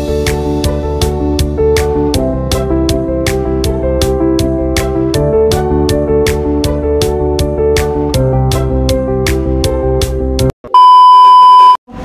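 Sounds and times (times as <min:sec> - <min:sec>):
background music: 0:00.0 - 0:10.5
high-pitched beep tone: 0:10.7 - 0:11.8.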